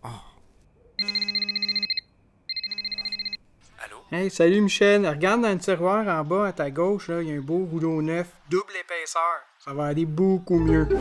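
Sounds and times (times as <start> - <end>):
telephone ringing: 1.0 - 3.4.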